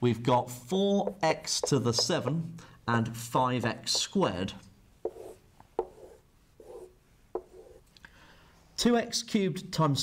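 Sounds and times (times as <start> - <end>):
marker squeaking on whiteboard: 1.0 - 2.2, 3.8 - 4.2, 5.0 - 7.9
pen tip tapping board: 1.0 - 2.2, 3.9 - 4.2, 5.0 - 7.8.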